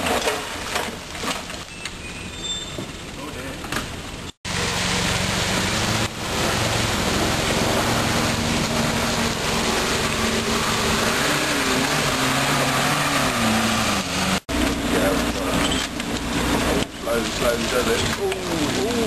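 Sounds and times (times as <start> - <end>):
off-road vehicle engine under load: 0.0 - 19.0.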